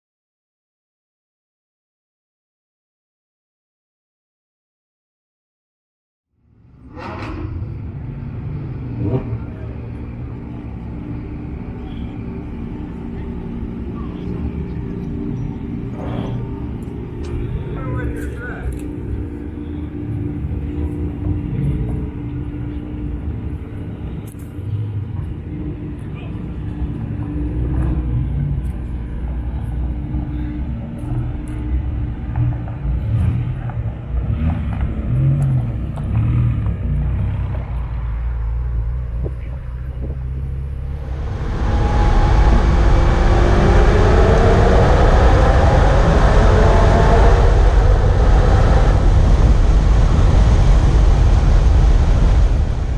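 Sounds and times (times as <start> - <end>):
car engines idling: 6.5 - 52.9
car engine accelerating: 6.6 - 52.9
people talking: 9.0 - 10.7, 11.8 - 19.1, 24.2 - 27.3, 39.2 - 40.5.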